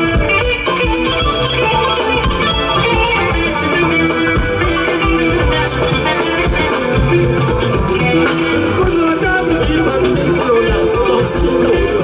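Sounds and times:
live band music: 0.0 - 12.0
plucked-string lead melody: 0.0 - 12.0
steady drum beat: 0.0 - 12.0.

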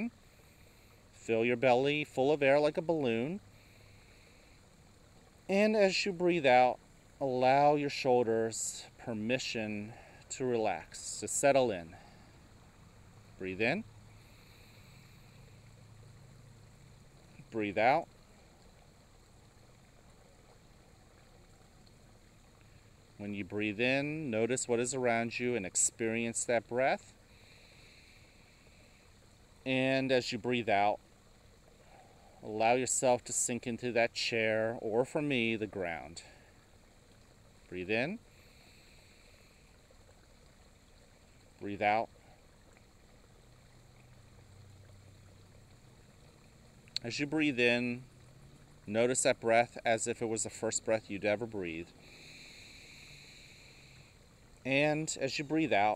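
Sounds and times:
faint low hum: 0.0 - 55.9
water trickling in fountain: 0.0 - 55.9.

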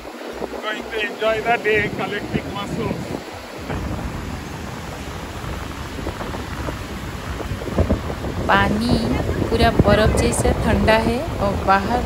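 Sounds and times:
ocean surf breaking: 0.0 - 12.0
wind buffeting microphone: 0.0 - 12.0.

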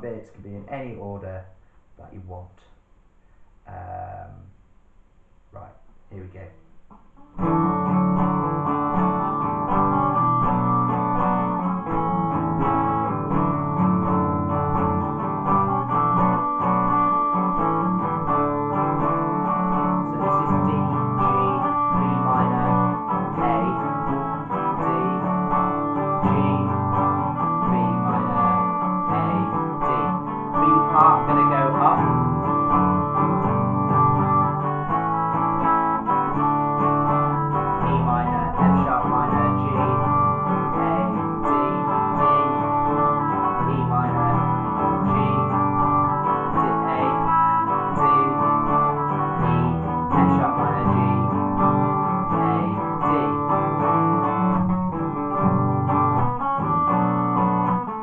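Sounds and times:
acoustic guitar strumming chords: 5.6 - 58.0.

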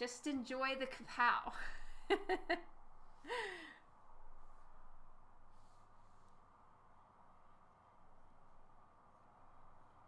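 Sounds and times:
faint room noise: 0.0 - 10.0
woman sighing: 3.2 - 3.9.

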